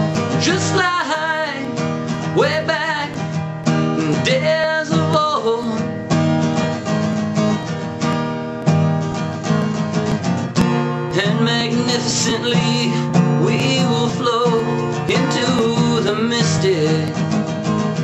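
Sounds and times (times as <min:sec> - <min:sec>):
acoustic guitar strumming: 0:00.0 - 0:18.0
man singing wordless lines: 0:00.1 - 0:06.1, 0:11.1 - 0:17.4.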